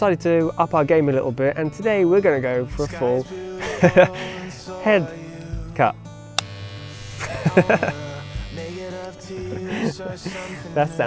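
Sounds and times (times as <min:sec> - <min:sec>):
background music: 0:00.0 - 0:11.0
electric hair clippers buzzing: 0:06.4 - 0:09.7
burst of laughter: 0:07.2 - 0:08.0.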